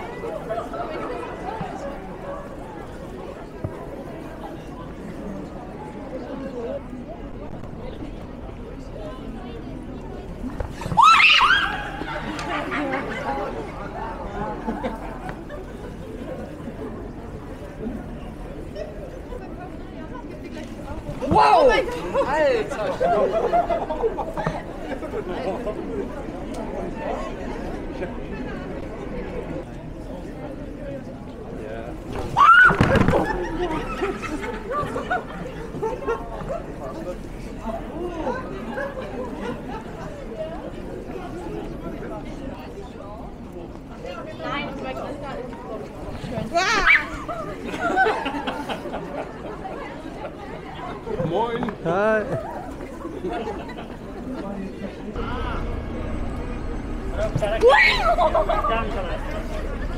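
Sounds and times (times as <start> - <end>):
people chattering: 0.0 - 59.9
loud startled cry: 10.9 - 12.1, 32.3 - 33.0, 57.5 - 58.6.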